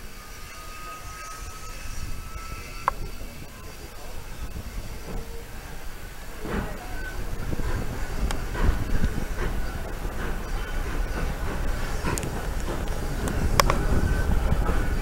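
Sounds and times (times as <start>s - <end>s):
train carriages rolling: 0.0s - 15.0s
wheels clicking over rail joints: 0.0s - 15.0s.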